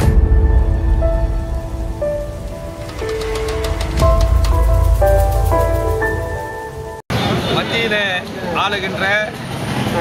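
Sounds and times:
logo intro music: 0:00.0 - 0:07.0.

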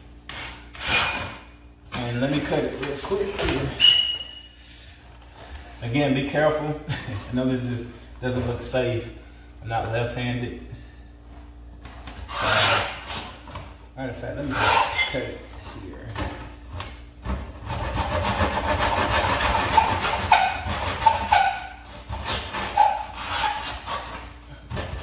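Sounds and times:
handsaw scraping wood: 0:00.3 - 0:01.4, 0:12.2 - 0:13.3, 0:14.4 - 0:15.2, 0:17.6 - 0:25.0.

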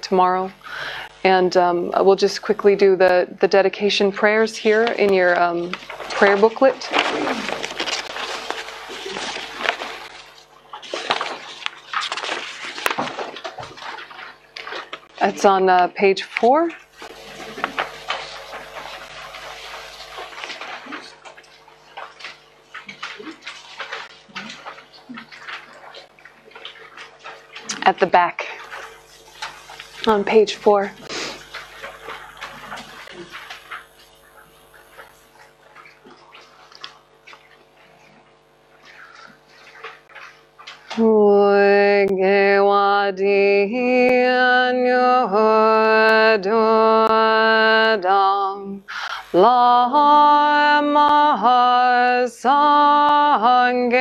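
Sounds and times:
woman chanting prayer: 0:00.0 - 0:07.6, 0:15.2 - 0:20.8, 0:27.7 - 0:28.7, 0:30.0 - 0:31.2, 0:40.9 - 0:54.0
paper rustling: 0:04.7 - 0:15.3, 0:16.9 - 0:25.7.

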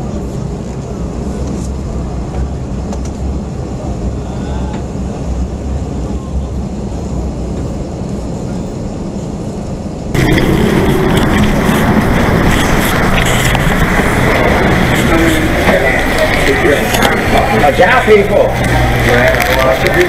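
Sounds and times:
low vehicle rumble: 0:00.0 - 0:20.0
truck diesel engine running: 0:10.1 - 0:20.0.

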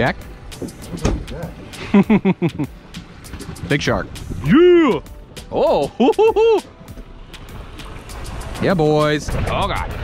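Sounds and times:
men talking: 0:00.0 - 0:02.7, 0:03.5 - 0:06.9, 0:08.5 - 0:10.0.

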